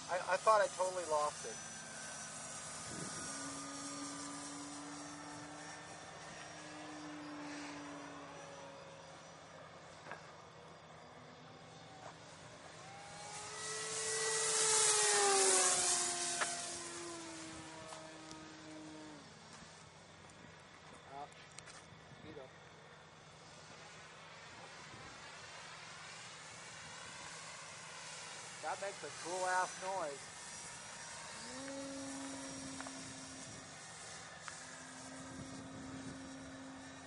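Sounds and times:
model plane motors whining: 0.0s - 37.0s.

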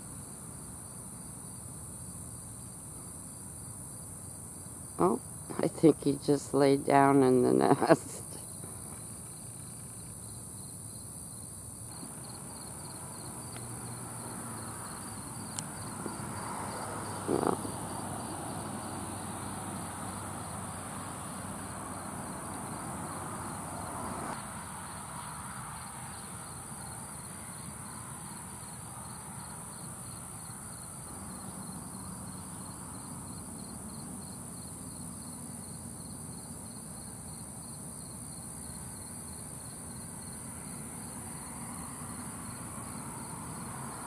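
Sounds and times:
night insects chorus: 0.0s - 44.0s.

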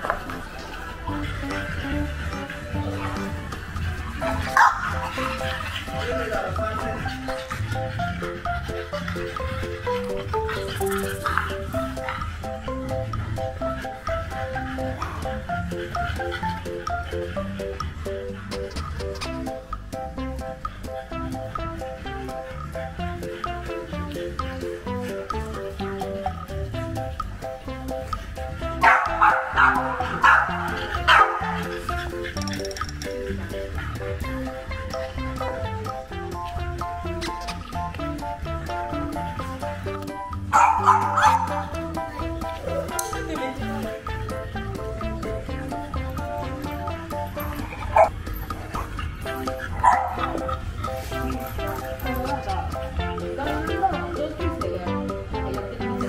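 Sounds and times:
bouncy background music: 0.0s - 56.0s
dog barking: 4.2s - 8.3s, 28.8s - 32.2s, 40.5s - 41.8s, 47.5s - 48.2s, 48.8s - 50.6s.

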